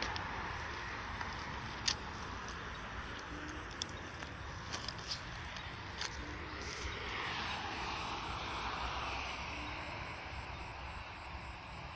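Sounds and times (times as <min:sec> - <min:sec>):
vehicle passing: 0:00.0 - 0:11.9.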